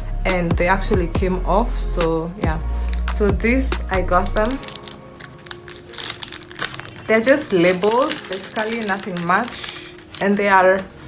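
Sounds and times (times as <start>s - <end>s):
sticker sheet crinkling: 4.1s - 10.9s.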